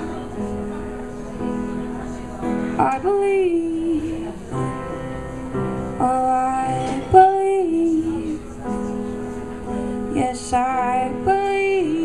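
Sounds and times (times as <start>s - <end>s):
piano accompaniment: 0.0s - 12.0s
woman singing held notes: 6.0s - 8.4s.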